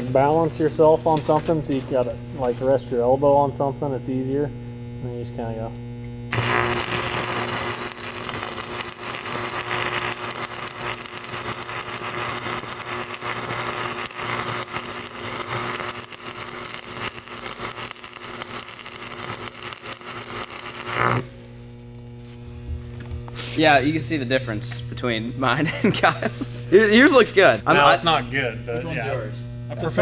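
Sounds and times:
welding arc crackling and sizzling: 5.8 - 28.2.

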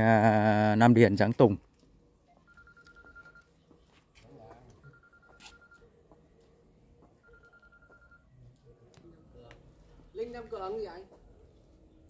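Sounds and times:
telephone ringing: 2.2 - 3.7, 4.8 - 5.9, 7.2 - 8.4.

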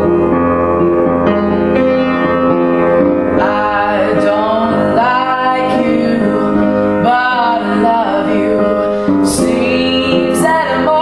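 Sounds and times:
piano chords: 0.0 - 11.0
young man singing: 3.4 - 11.0.

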